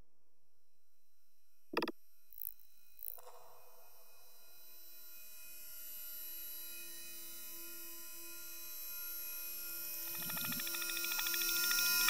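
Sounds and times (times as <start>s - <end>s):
fast pulsing electronic texture: 10.0s - 12.0s
sustained high electronic tones: 10.0s - 12.0s.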